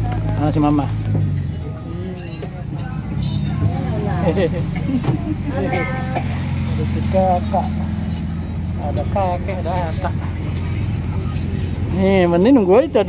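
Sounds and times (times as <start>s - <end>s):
low engine hum: 0.0s - 13.0s
people talking: 1.7s - 13.0s.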